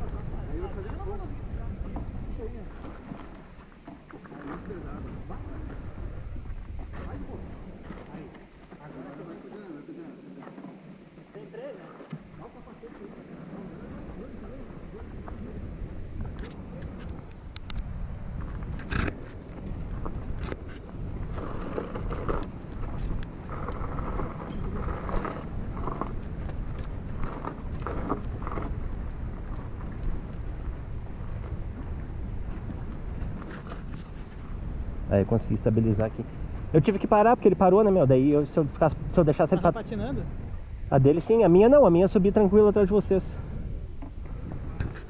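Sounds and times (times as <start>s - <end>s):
wind rumble on microphone: 0.0s - 8.8s, 12.2s - 45.0s.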